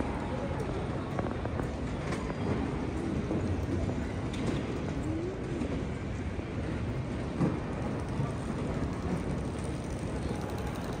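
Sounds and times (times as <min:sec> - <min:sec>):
murmur of many voices: 0:00.0 - 0:11.0
rumbling building noise: 0:00.0 - 0:11.0.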